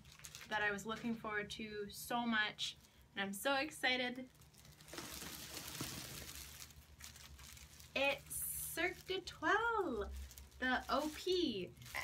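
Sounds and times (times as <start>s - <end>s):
plastic bag crinkling and rustling: 0.0s - 1.3s, 3.8s - 12.0s.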